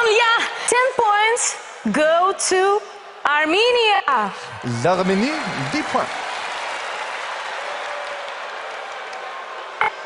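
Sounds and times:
audience applauding and cheering: 0:04.4 - 0:10.0.

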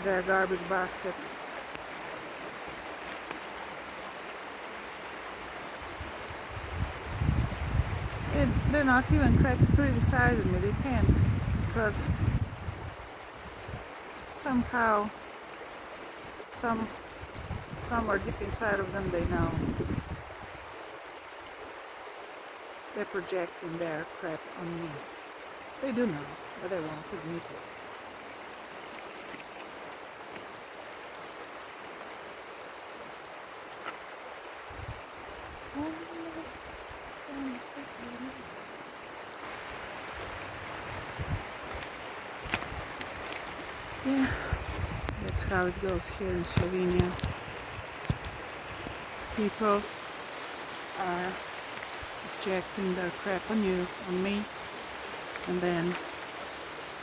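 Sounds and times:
river flowing: 0:00.0 - 0:57.0
wind on microphone: 0:05.8 - 0:13.9, 0:16.7 - 0:20.8, 0:34.6 - 0:38.6, 0:39.4 - 0:49.9.

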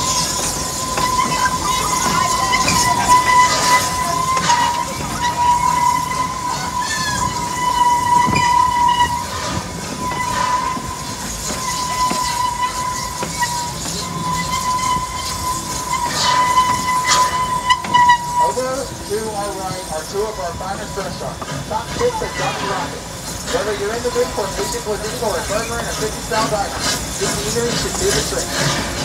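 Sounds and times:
steam train whistle tone: 0:00.0 - 0:29.0
train running rumble: 0:00.0 - 0:29.0.

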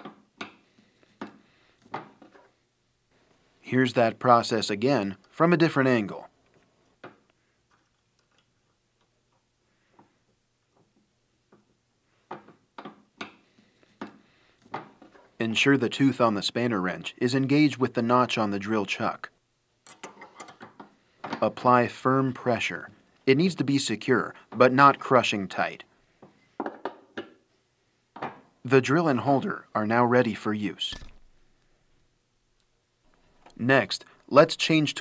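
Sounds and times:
metal tools clinking and knocking: 0:19.8 - 0:20.6.

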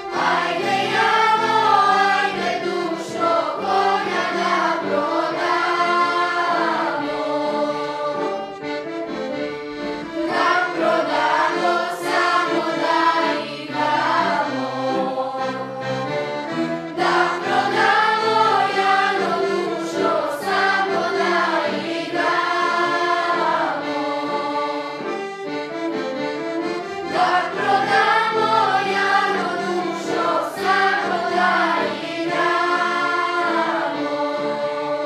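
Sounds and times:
children's choir singing: 0:00.0 - 0:35.0
violin accompaniment: 0:00.0 - 0:35.0.

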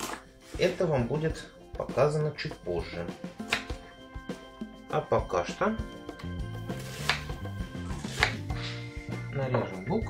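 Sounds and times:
background music: 0:00.0 - 0:10.0
knife chopping onion on cutting board: 0:03.4 - 0:03.8, 0:06.7 - 0:08.5.

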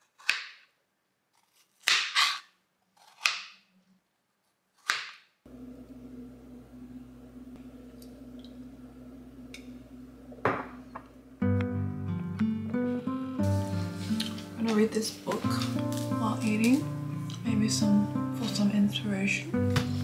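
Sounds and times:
knife cutting on cutting board: 0:01.4 - 0:03.5
steady low hum: 0:05.5 - 0:12.6.

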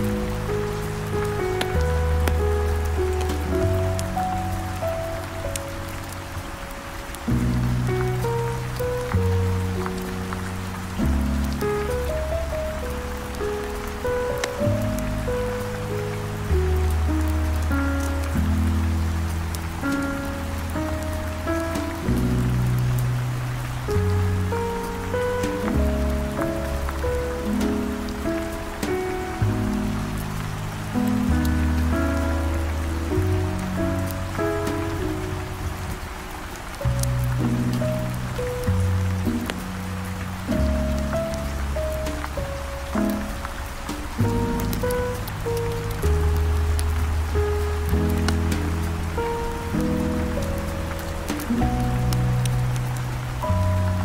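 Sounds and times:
heavy rain hiss: 0:00.0 - 0:54.0
smooth jazz: 0:00.0 - 0:54.0
wood fire crackling: 0:00.0 - 0:54.0.

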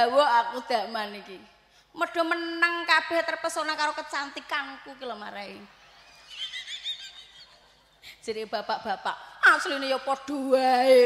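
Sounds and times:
high-pitched quavering laugh: 0:06.0 - 0:07.8.

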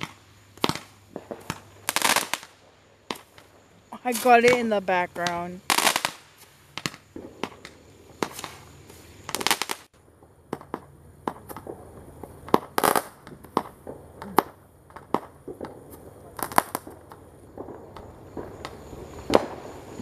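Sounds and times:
fireworks bangs and crackling: 0:00.0 - 0:20.0.

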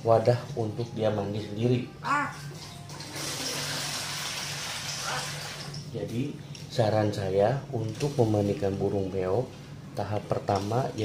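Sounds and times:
running water rushing: 0:02.5 - 0:05.8.

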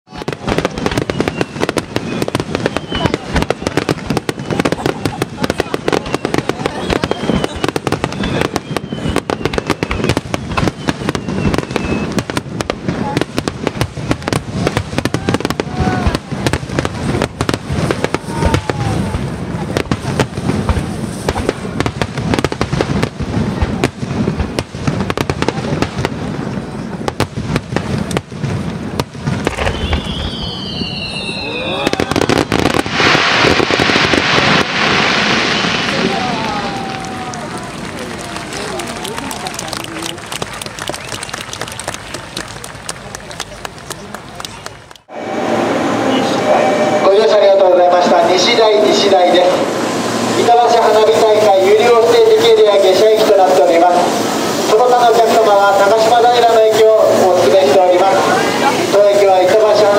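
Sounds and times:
fireworks bursts and crackling: 0:00.1 - 0:59.9.

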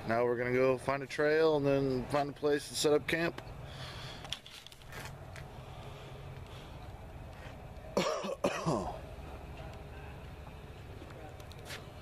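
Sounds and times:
steady low hum: 0:00.0 - 0:12.0
person clearing throat: 0:08.0 - 0:09.0.

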